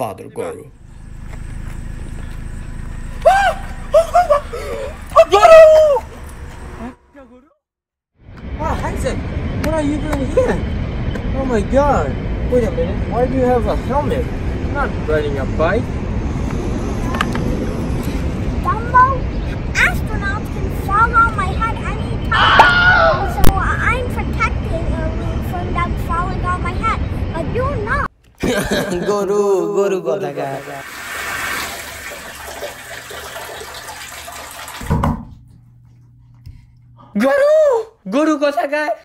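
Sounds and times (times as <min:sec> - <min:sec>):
low outdoor background roar: 0:00.0 - 0:07.6, 0:08.2 - 0:29.0
shower water running: 0:30.4 - 0:35.1.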